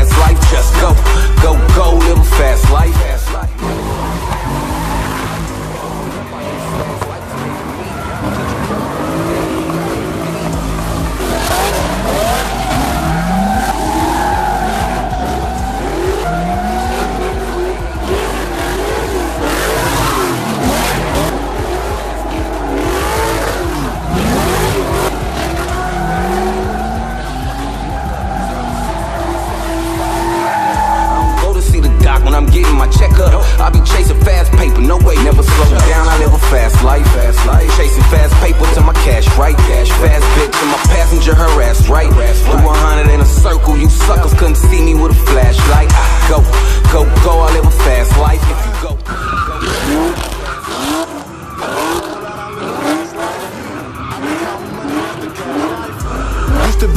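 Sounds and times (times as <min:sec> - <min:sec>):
car engines revving: 0:00.0 - 0:56.9
tyres squealing on asphalt: 0:00.0 - 0:56.9.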